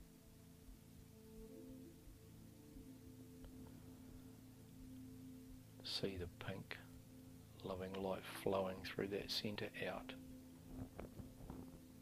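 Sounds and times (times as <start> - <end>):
soft meditation music: 0.0 - 12.0.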